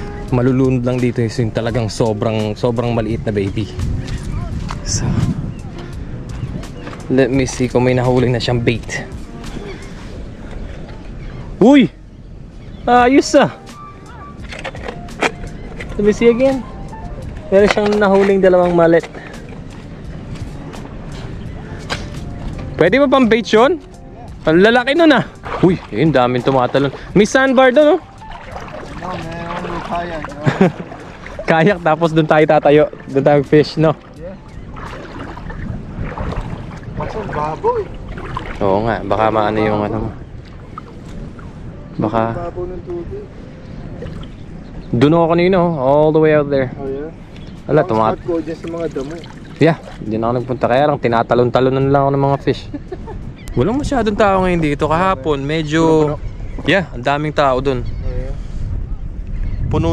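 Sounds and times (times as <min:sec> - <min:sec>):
wind rumble on microphone: 0:00.0 - 0:59.9.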